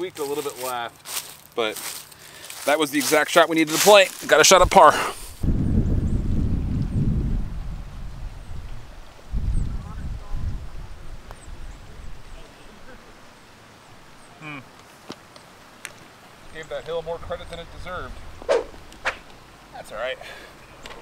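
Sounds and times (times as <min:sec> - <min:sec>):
wind buffeting microphone: 0:04.6 - 0:13.1, 0:16.5 - 0:19.3.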